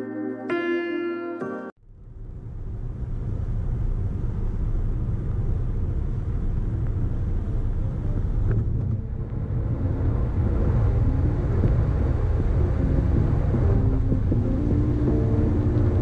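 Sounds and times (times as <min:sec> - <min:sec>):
car tyre and road noise: 0:01.8 - 0:16.0.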